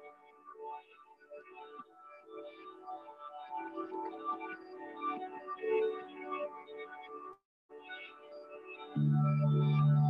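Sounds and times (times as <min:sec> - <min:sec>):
soft slow instrumental music: 0:00.0 - 0:10.0.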